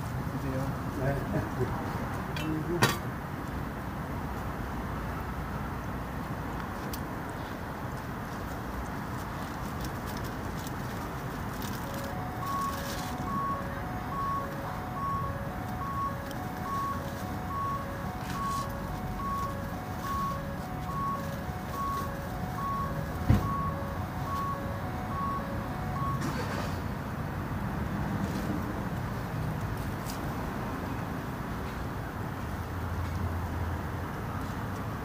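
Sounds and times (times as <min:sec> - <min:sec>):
traffic rumble: 0:00.0 - 0:35.0
vehicle reversing alarm beeping: 0:11.6 - 0:27.0.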